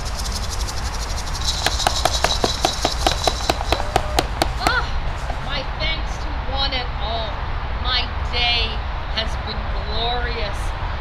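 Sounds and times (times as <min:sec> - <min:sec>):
insects buzzing: 0:00.0 - 0:05.7
small group clapping: 0:01.7 - 0:04.7.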